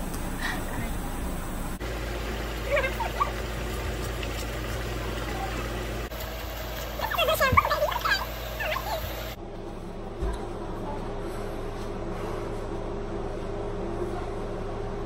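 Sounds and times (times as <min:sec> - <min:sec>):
kitchen faucet running: 0:01.2 - 0:09.4.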